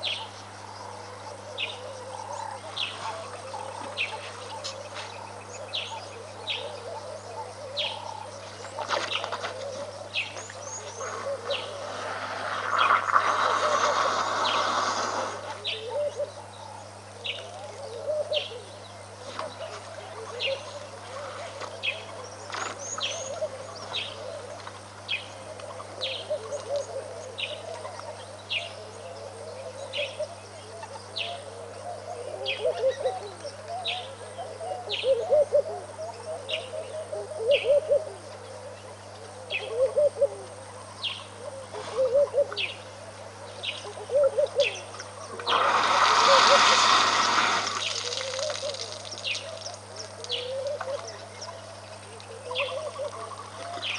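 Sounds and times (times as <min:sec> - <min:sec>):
birds chattering calls: 0:00.0 - 0:53.9
steady electrical hum: 0:00.0 - 0:53.9.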